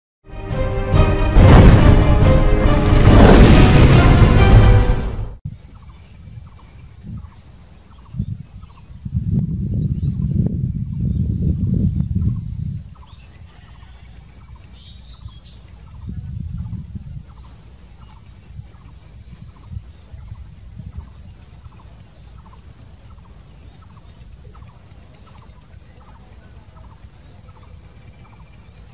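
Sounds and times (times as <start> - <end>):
low rumbling: 0.5 - 5.4
birds chirping: 1.5 - 28.9.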